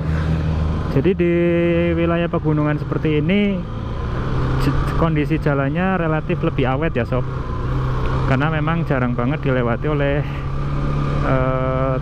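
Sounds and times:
motorcycle engine running: 0:00.0 - 0:12.0
road and wind noise: 0:00.0 - 0:12.0.

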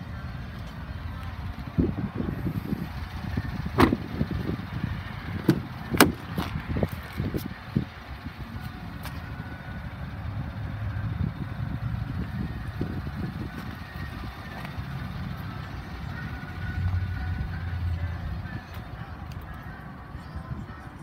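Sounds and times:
rumble of handling and wind: 0:00.0 - 0:21.0.

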